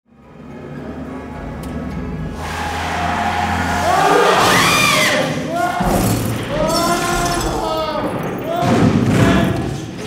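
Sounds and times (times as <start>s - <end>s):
voices wailing: 2.3s - 9.8s.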